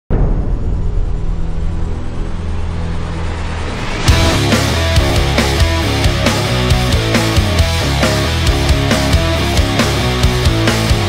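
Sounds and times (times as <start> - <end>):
dark ominous drone music: 0.1 - 11.0.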